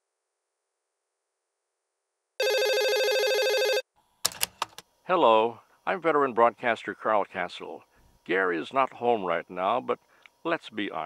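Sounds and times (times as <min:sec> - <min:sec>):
telephone trilling ring: 0:02.4 - 0:03.8.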